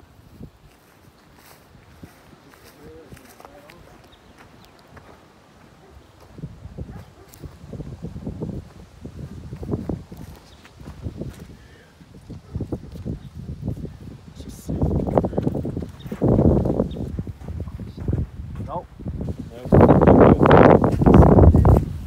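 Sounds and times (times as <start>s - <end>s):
footsteps on dirt and grass: 0.0s - 22.0s.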